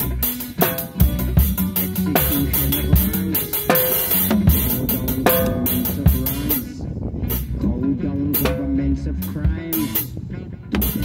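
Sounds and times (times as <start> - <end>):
acoustic drum kit: 0.0 - 11.0
dub reggae track with bass: 0.0 - 11.0.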